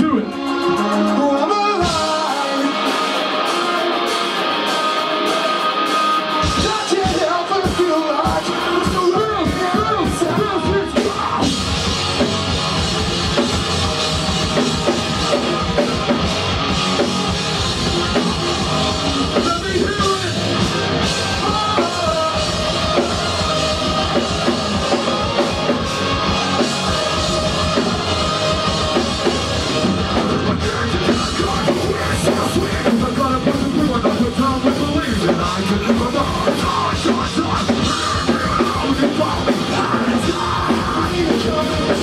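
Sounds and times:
distorted guitars: 0.0 - 42.0
metalcore band playing live: 0.0 - 42.0
drum kit hitting: 11.0 - 42.0.

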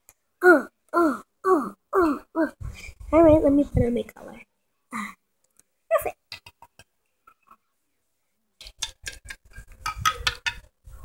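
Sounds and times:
plastic figurines clicking on table: 8.6 - 10.7.

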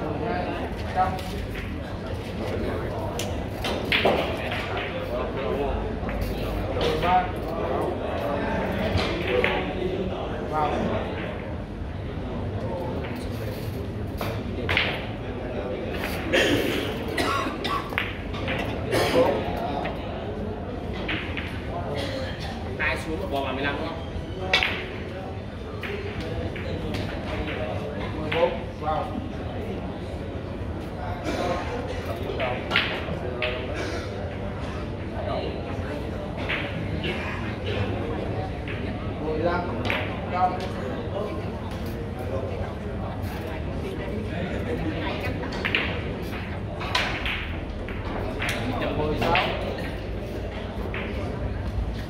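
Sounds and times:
murmur of voices: 0.0 - 52.0
billiard balls clicking: 44.8 - 52.0.

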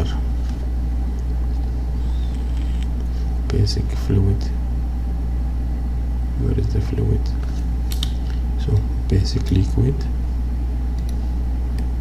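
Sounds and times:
steady low-pitched hum: 0.0 - 12.0.

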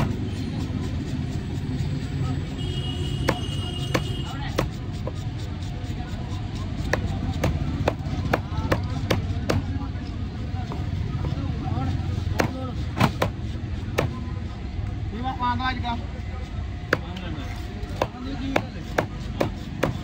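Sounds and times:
low traffic rumble: 0.0 - 20.0
cleaver chopping on wooden block: 3.2 - 5.2, 6.6 - 9.7, 12.3 - 14.2, 16.9 - 17.2, 17.8 - 20.0.

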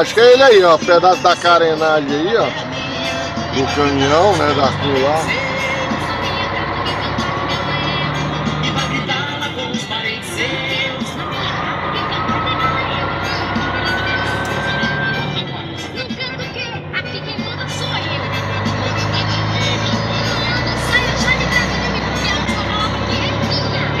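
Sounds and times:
music: 0.0 - 24.0
truck engine running: 0.0 - 24.0
person speaking: 3.5 - 5.3.

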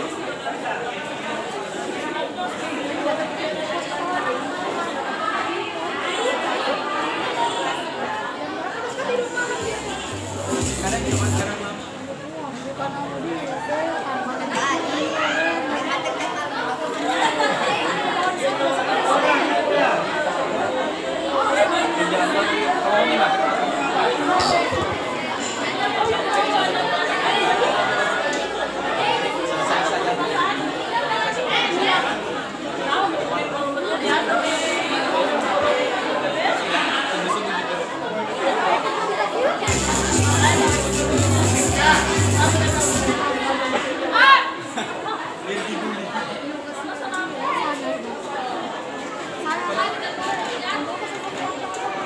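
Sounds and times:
babble of many voices: 0.0 - 52.0.

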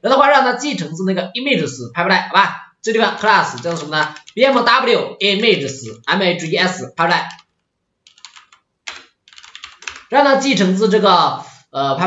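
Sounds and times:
computer keyboard typing: 3.0 - 10.2.

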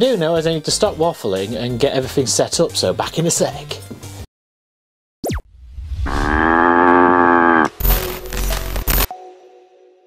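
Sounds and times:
cow mooing: 6.1 - 7.8.

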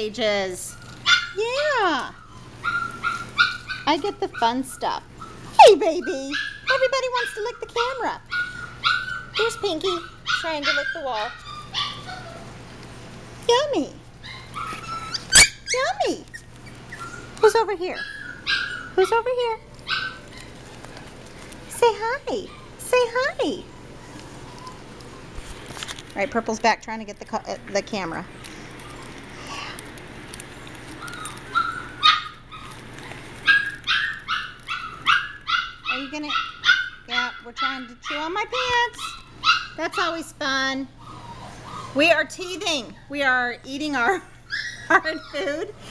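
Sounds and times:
puppies whining and yipping: 0.7 - 12.7, 14.2 - 26.1, 27.9 - 40.2, 40.8 - 43.3, 44.0 - 45.9.

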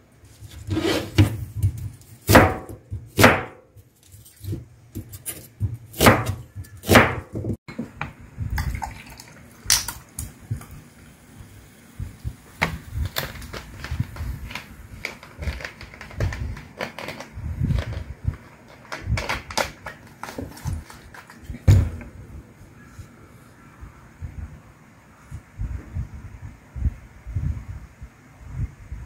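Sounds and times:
knife chopping onion on board: 0.8 - 3.6, 4.4 - 7.6
cola pouring into glass: 8.6 - 10.1.

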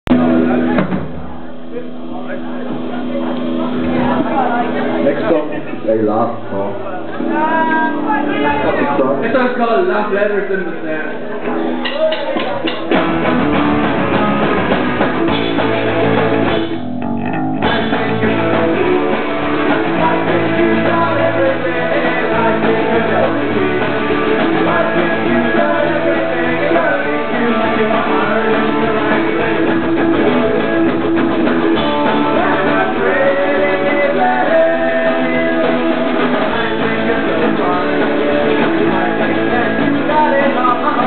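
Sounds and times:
bass guitar: 0.0 - 41.0
drums: 0.0 - 41.0
electric guitars: 0.1 - 41.0
pop-punk band playing: 0.1 - 41.0.

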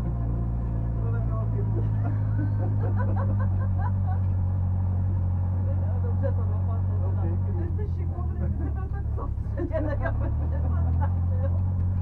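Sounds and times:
car engine running at low revs: 0.0 - 12.0.

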